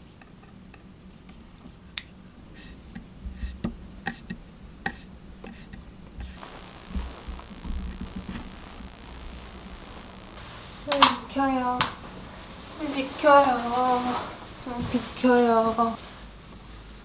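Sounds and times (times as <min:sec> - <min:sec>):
steady hiss: 0:00.0 - 0:17.0.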